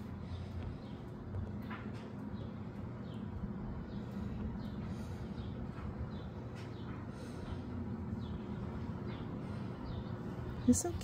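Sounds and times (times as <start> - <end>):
steady low rumble: 0.0 - 11.0
bird chirping: 2.2 - 11.0.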